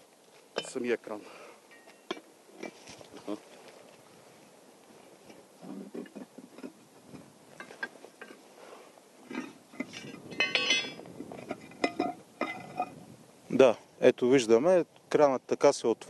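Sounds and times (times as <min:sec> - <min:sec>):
ringing metallic clang: 0:01.7 - 0:02.2, 0:09.3 - 0:11.1, 0:11.8 - 0:13.0
metallic knocks: 0:09.3 - 0:13.0.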